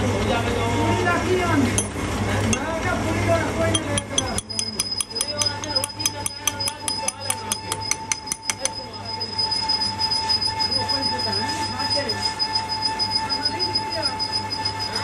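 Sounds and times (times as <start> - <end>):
lathe whining: 1.7 - 15.0
fast even ticking: 3.7 - 9.0.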